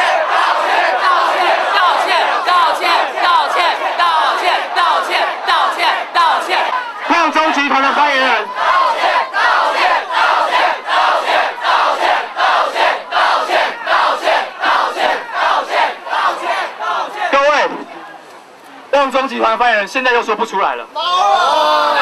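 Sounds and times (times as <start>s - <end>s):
crowd chanting in unison: 0.0s - 18.3s.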